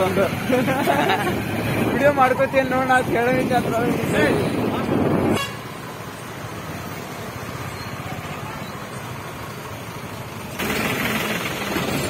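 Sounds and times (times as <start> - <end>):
truck and bus engines idling: 0.0 - 12.0.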